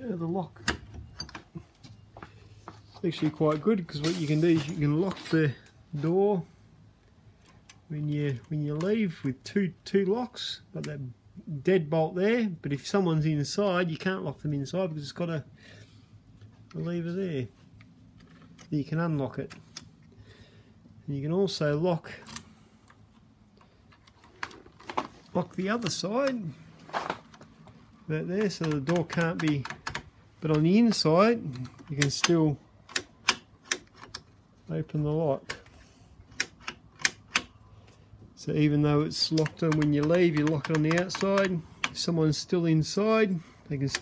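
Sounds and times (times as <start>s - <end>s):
faint steady hum: 4.6s - 44.0s
door lock clicking with key: 28.4s - 31.0s, 31.6s - 34.3s, 36.2s - 37.6s, 39.2s - 42.0s
door lock handle clicks: 36.3s - 37.6s.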